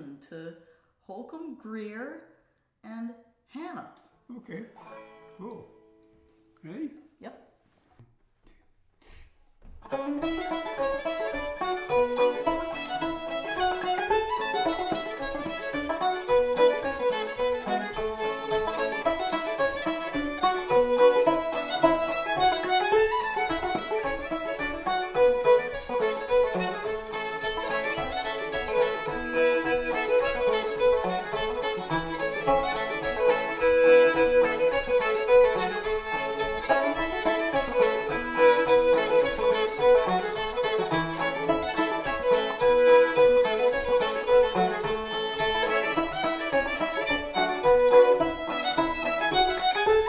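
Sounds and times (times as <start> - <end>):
banjo rhythm: 4.6 - 6.8, 9.7 - 50.0
fiddle melody: 9.7 - 50.0.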